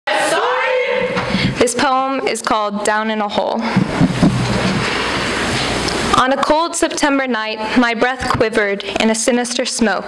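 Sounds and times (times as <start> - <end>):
breath rushing into microphone: 1.2 - 1.6.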